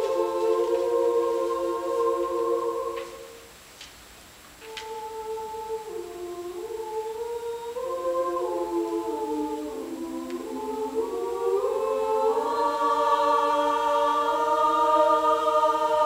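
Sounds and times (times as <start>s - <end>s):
women's choir singing a cappella: 0.0s - 3.6s, 4.6s - 16.0s.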